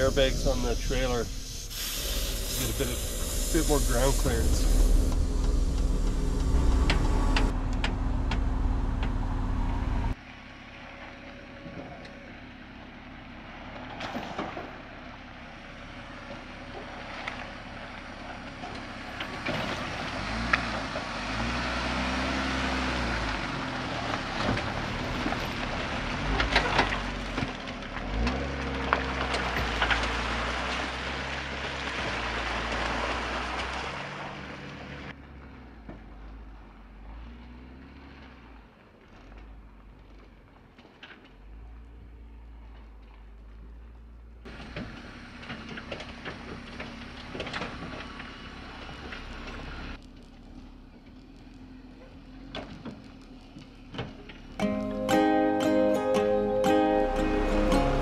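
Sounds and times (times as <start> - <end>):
vehicle engine revving: 0.0 - 10.2, 18.8 - 35.6
air compressor running: 1.3 - 7.5.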